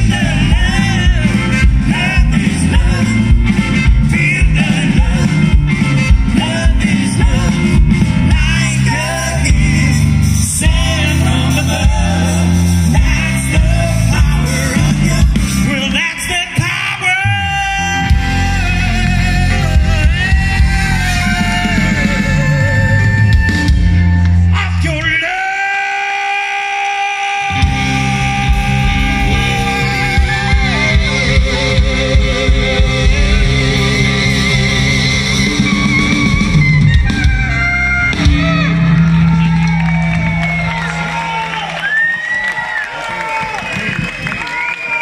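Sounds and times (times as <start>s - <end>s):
man shouting lead vocal: 0.0s - 3.2s, 8.2s - 34.3s
live rock band playing: 0.0s - 25.2s, 27.4s - 42.7s
crowd cheering and whooping: 28.4s - 45.0s.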